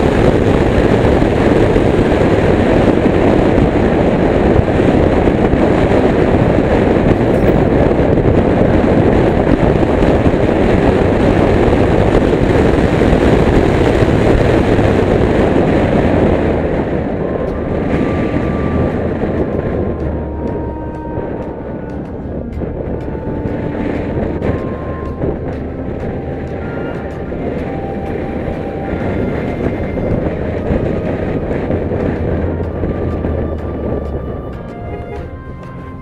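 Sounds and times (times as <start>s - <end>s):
car road and wind noise: 0.0s - 36.0s.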